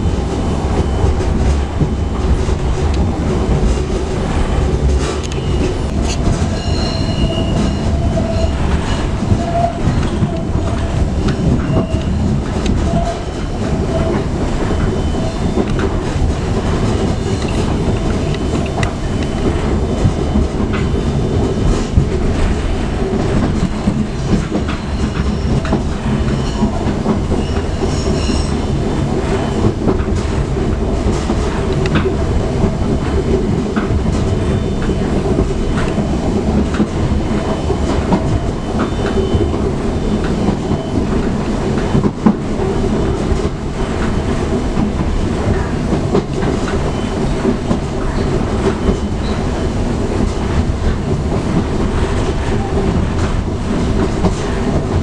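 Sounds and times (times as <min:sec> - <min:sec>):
train carriage rumble: 0:00.0 - 0:55.0
high wheel squeals: 0:05.3 - 0:09.9.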